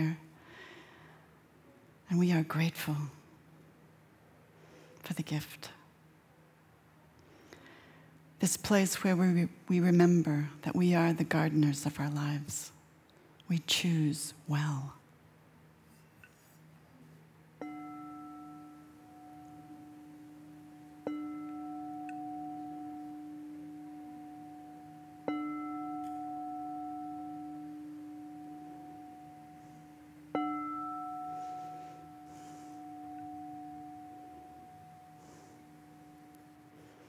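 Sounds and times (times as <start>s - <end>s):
singing bowl struck with mallet: 17.6s - 37.0s.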